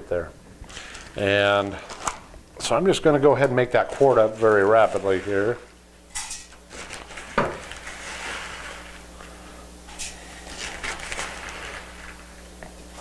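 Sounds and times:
plastic spoon scooping powder: 3.3 - 5.8.

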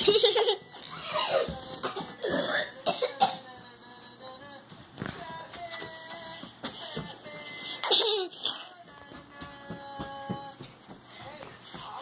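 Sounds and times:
person coughing: 1.2 - 3.4.

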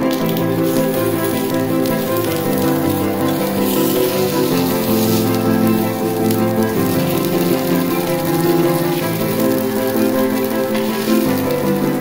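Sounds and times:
background music with held notes: 0.0 - 12.0
food sizzling in oil: 0.0 - 12.0.

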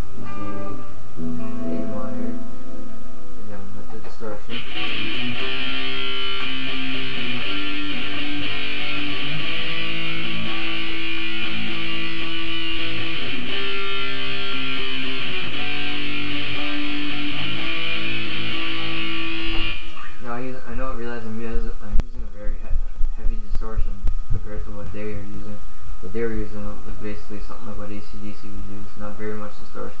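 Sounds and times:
distorted electric guitar strumming: 0.0 - 28.0.

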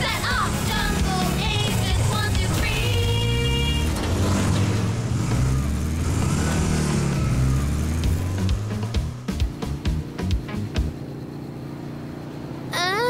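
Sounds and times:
cartoon motorbike engine revving: 0.0 - 13.0
upbeat background music: 8.0 - 11.0.

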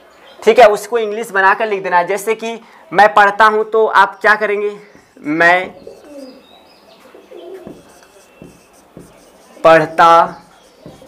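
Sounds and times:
marker writing on whiteboard: 4.9 - 6.4, 7.0 - 11.0
pigeon cooing: 5.0 - 11.0.

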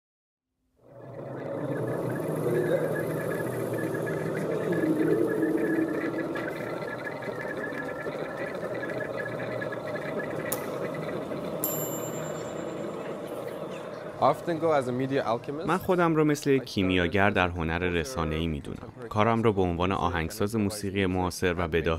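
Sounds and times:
faint high tones: 0.8 - 15.0
low rumbling drone: 0.8 - 15.6.

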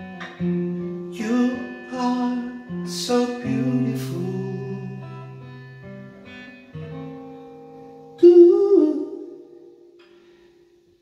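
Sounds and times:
acoustic guitar chord: 0.0 - 11.0
man singing long wordless note: 1.1 - 5.4, 8.2 - 9.6.

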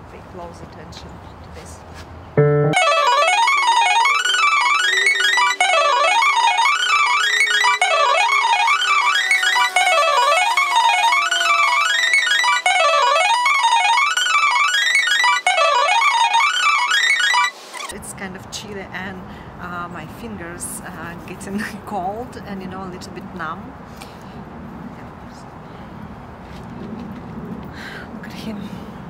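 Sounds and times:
held low piano note: 2.4 - 5.6
digital piano fast runs: 2.4 - 17.6.

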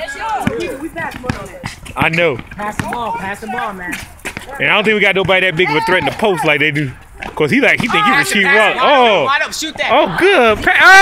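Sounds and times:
basketball bouncing on asphalt: 0.0 - 8.4
people talking: 0.0 - 11.0.

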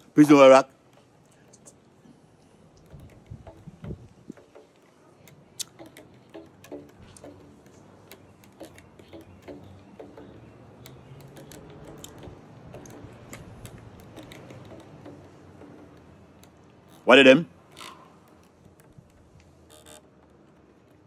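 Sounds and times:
string and fret clicks: 0.8 - 21.0.

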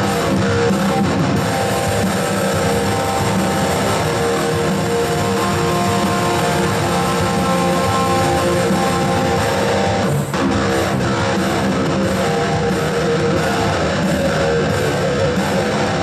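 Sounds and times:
amplified electric guitar: 0.0 - 16.0.

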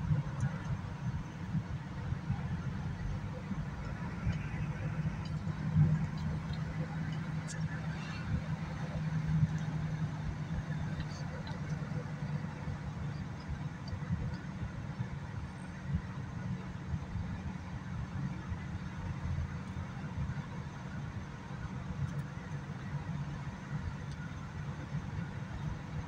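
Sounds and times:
car road and engine rumble: 0.0 - 26.0.

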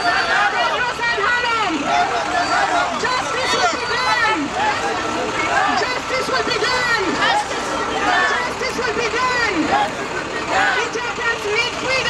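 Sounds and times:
crowd of protesters talking and calling: 0.0 - 12.0.

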